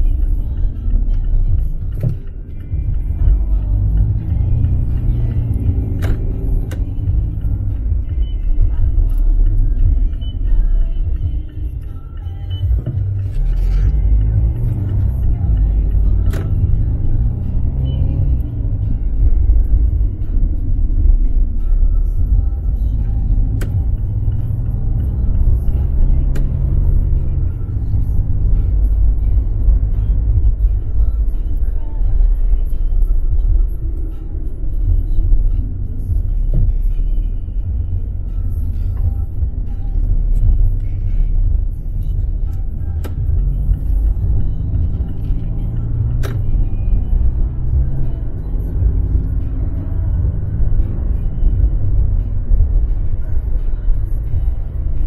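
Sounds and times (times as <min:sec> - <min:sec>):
car engine: 0:00.0 - 0:55.0
road noise: 0:00.0 - 0:55.0.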